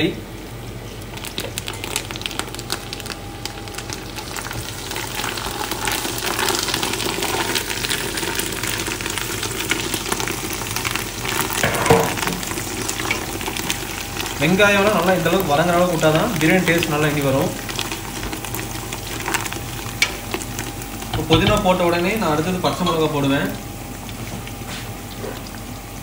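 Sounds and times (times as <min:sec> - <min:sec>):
food sizzling in hot oil: 0:00.3 - 0:26.0.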